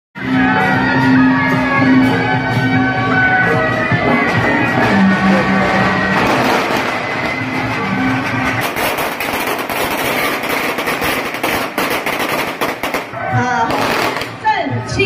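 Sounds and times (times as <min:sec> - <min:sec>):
firecrackers crackling: 0:03.6 - 0:14.5.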